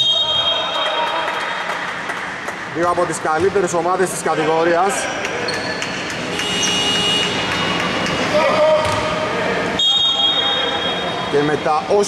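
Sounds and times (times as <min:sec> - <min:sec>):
sneakers squeaking on floor: 0:05.0 - 0:09.2
basketball bouncing on wooden court: 0:08.8 - 0:09.1.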